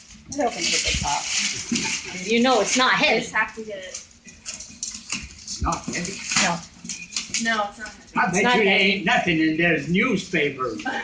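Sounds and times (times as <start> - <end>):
paper and cardboard rustling: 0.0 - 8.1
voices talking: 0.3 - 4.4, 5.6 - 11.0.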